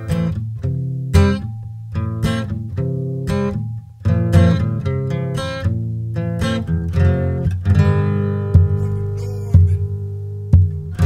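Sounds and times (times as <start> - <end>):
strummed acoustic guitar chords: 0.0 - 11.0.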